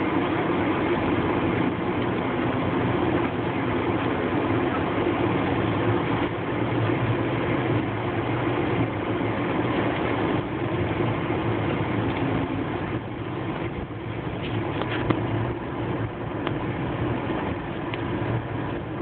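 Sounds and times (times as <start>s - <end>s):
tyres rolling on dirt road: 0.0s - 19.0s
vehicle engine running: 0.0s - 19.0s.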